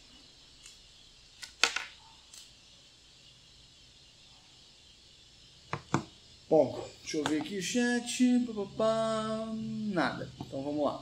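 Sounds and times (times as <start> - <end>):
room hiss: 0.0 - 11.0.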